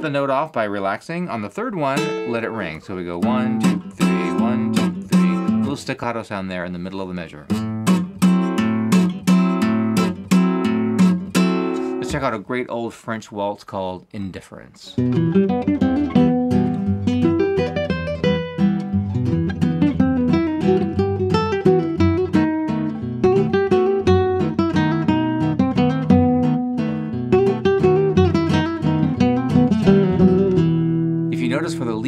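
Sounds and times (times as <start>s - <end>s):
person speaking: 0.0s - 7.6s, 11.7s - 15.0s, 31.3s - 32.0s
fingerstyle classical guitar: 1.8s - 6.0s, 7.5s - 12.3s, 15.0s - 32.0s.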